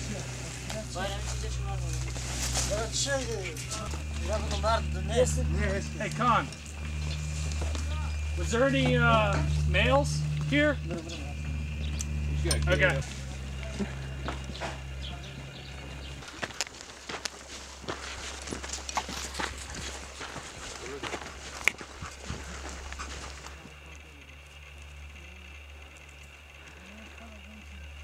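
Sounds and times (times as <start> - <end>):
faint voices: 0.0 - 16.3, 19.1 - 28.0
low steady hum: 0.0 - 28.0
irregular footsteps: 0.6 - 23.8
knocks and clicks of gear: 3.7 - 17.4.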